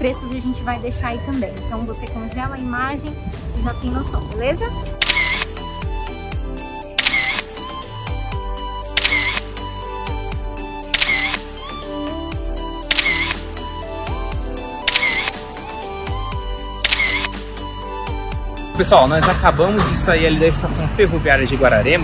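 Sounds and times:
background music with steady beat: 0.0s - 22.0s
camera shutter click: 5.0s - 5.6s, 7.0s - 7.5s, 9.0s - 9.5s, 10.9s - 11.4s, 12.9s - 13.4s, 14.8s - 15.4s, 16.8s - 17.4s.

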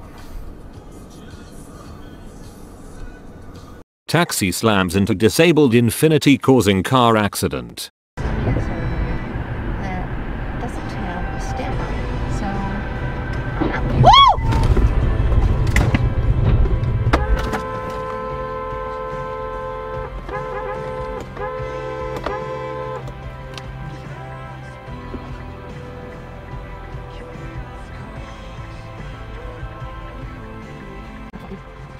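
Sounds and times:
road and engine rumble: 0.0s - 5.2s, 8.2s - 31.9s
car crash: 13.2s - 18.1s.

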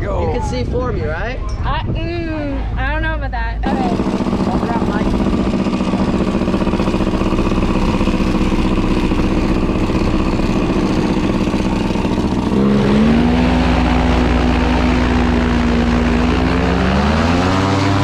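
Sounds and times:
paramotor engine and propeller: 3.6s - 18.0s.

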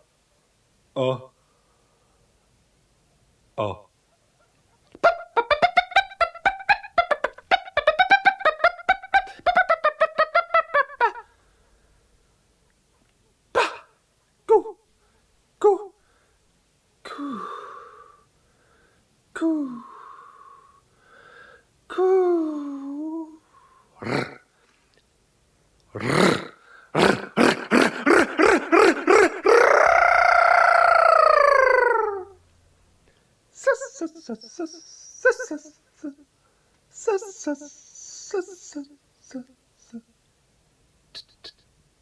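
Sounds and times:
person vocalizing sound poetry: 1.0s - 1.4s, 3.6s - 3.9s, 5.0s - 11.4s, 13.5s - 14.9s, 15.6s - 16.0s, 17.0s - 18.2s, 19.4s - 20.8s, 21.9s - 24.5s, 25.9s - 32.4s, 33.5s - 36.3s, 36.9s - 40.1s, 41.1s - 41.7s
person yelping syllables: 5.0s - 11.2s, 13.5s - 14.8s, 15.6s - 16.0s, 25.9s - 32.4s, 33.6s - 36.2s, 36.9s - 40.1s
breathy hissing exhalation: 17.1s - 19.0s, 19.7s - 21.7s.

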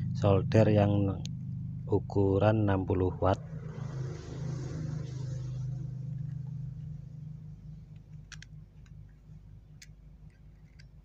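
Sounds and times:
low steady hum: 0.0s - 11.0s
light metal clicks: 7.9s - 11.0s.

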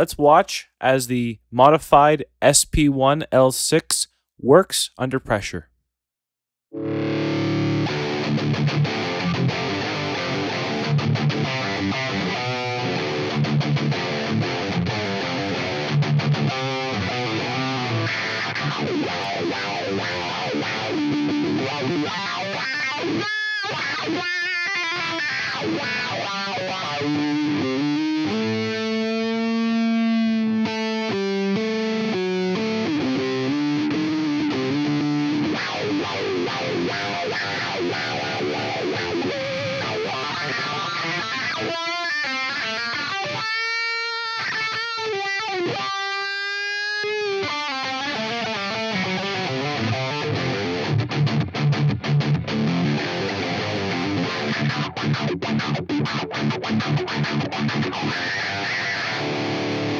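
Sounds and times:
distorted electric guitar with wah: 6.8s - 59.9s.

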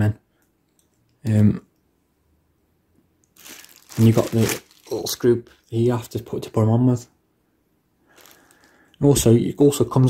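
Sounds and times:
plastic bag crinkling: 3.3s - 6.4s, 8.1s - 8.9s.

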